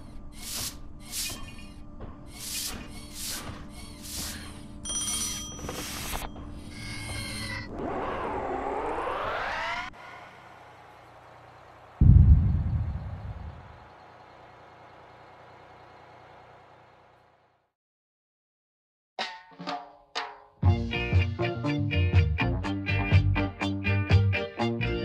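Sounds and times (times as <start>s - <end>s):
loud low boom: 12.0s - 13.8s.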